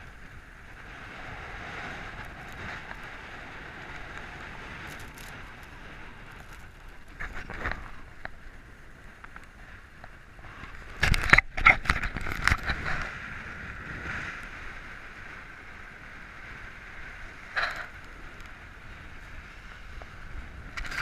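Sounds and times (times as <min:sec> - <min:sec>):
skis scraping hard snow: 0:00.0 - 0:21.0
skis sliding over packed snow: 0:00.0 - 0:21.0
wind rushing across microphone: 0:00.0 - 0:21.0.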